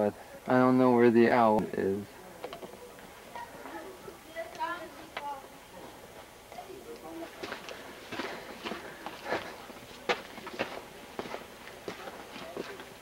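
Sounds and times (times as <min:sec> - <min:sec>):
faint voices: 0:00.0 - 0:13.0
footsteps crunching on trail: 0:07.2 - 0:13.0.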